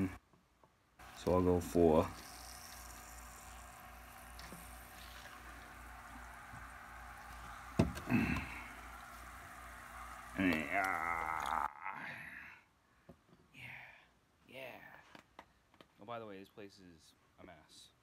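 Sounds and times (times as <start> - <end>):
liquid trickling into glass cup: 2.0 - 11.7.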